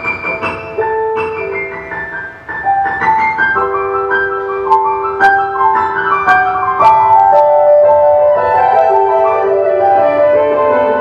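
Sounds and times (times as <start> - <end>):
sustained accompaniment: 4.6 - 11.0.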